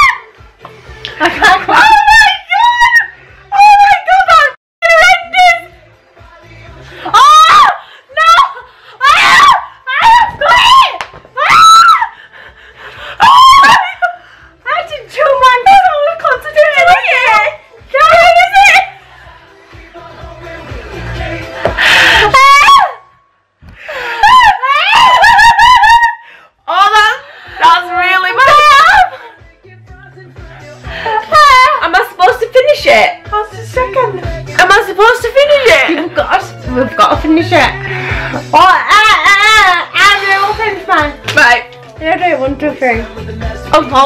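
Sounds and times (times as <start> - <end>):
women screaming: 0.0 - 0.3, 7.0 - 12.2, 13.2 - 14.1, 22.0 - 23.1, 24.0 - 26.3, 28.4 - 29.2
women shrieking and wailing: 0.0 - 0.3, 1.3 - 5.3, 7.0 - 12.2, 13.1 - 14.2, 21.9 - 23.1, 23.9 - 29.2, 31.1 - 31.8, 38.5 - 40.4
women laughing: 1.0 - 2.1, 23.9 - 26.2.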